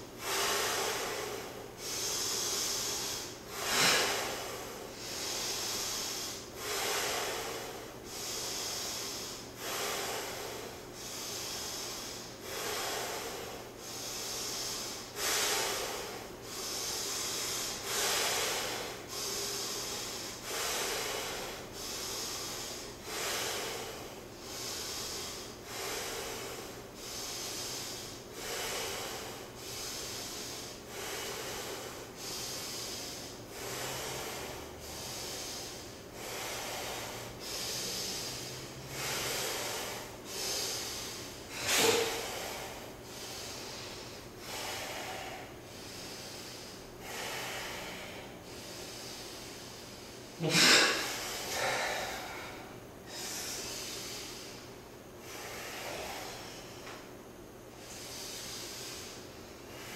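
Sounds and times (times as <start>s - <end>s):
heavy rhythmic breathing: 0.0s - 59.9s.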